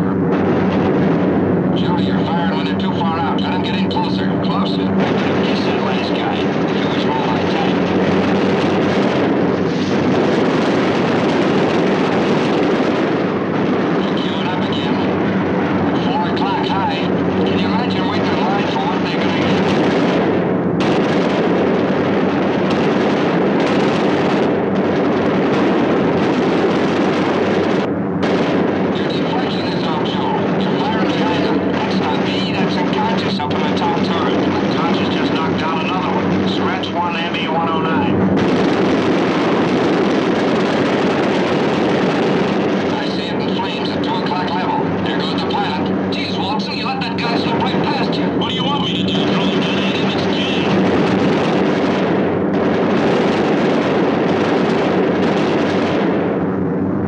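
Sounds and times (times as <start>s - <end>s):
aircraft engines droning: 0.0s - 57.0s
indistinct voices: 1.8s - 7.9s, 14.0s - 19.7s, 29.0s - 38.2s, 42.9s - 50.7s.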